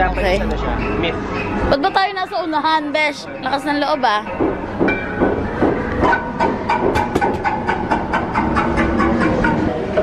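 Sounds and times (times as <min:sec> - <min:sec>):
rapid sharp clicks and knocks: 0:04.4 - 0:09.4.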